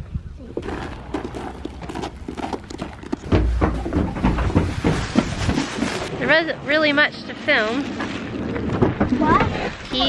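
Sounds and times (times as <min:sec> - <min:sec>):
footsteps on gravel: 0:00.6 - 0:06.1.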